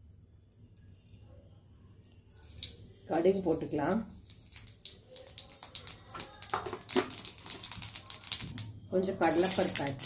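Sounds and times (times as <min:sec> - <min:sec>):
hot oil popping and crackling: 0:02.4 - 0:10.0.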